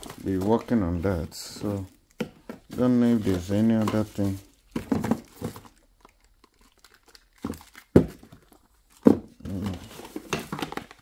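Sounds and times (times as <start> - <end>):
packaging crinkling and rustling: 0.0 - 11.0.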